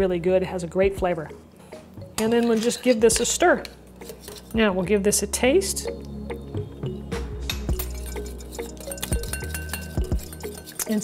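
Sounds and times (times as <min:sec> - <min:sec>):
background music: 0:00.0 - 0:11.0
whisk scraping ceramic bowl: 0:07.7 - 0:11.0.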